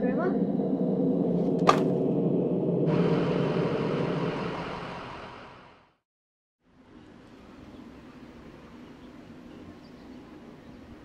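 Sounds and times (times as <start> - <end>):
low rumbling drone: 0.0 - 6.0.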